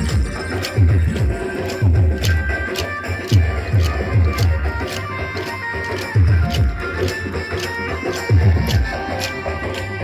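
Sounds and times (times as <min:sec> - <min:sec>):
folk music: 0:00.0 - 0:10.0
wooden sticks clacking: 0:00.0 - 0:10.0.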